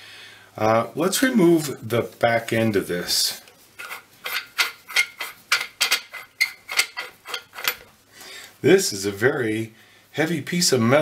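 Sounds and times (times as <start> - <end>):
metal threads scraping ticks: 3.8 - 7.8.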